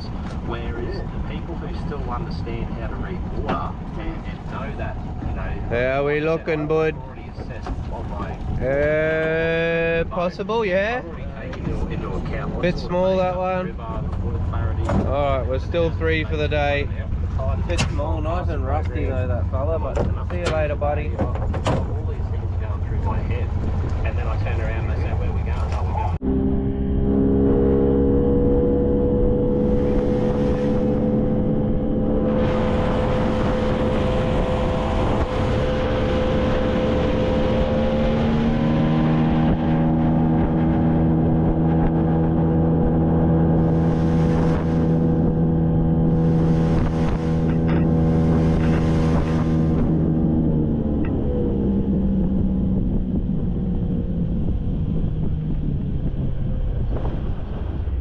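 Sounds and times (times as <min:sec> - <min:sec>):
small boat motor running: 0:26.2 - 0:55.9
wind and water rushing: 0:28.4 - 0:58.0.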